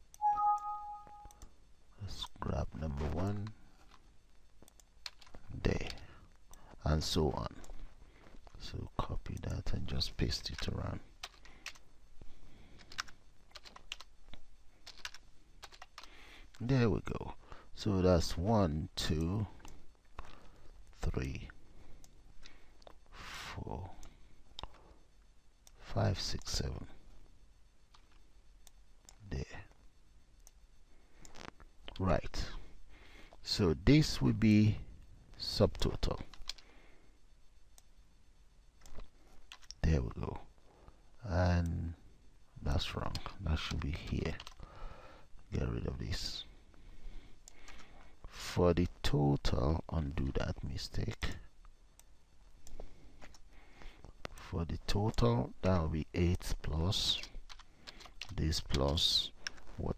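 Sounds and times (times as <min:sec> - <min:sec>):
computer keyboard clicking: 0:04.7 - 0:06.0, 0:10.5 - 0:11.8, 0:12.8 - 0:14.1, 0:14.8 - 0:16.2, 0:36.3 - 0:36.6, 0:38.8 - 0:39.8, 0:43.2 - 0:44.6, 0:57.5 - 0:58.4.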